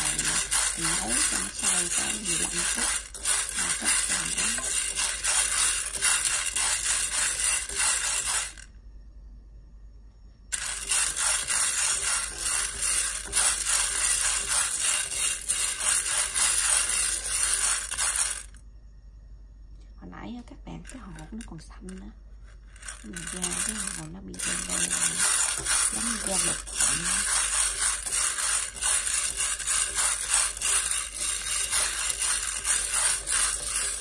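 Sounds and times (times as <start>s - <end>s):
beans rattling in a pan: 0.0s - 8.7s, 10.5s - 18.6s, 20.8s - 34.0s.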